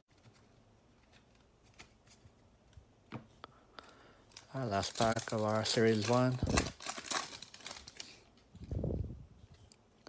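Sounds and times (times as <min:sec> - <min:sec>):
foil wrapper crinkling: 0:04.3 - 0:08.5.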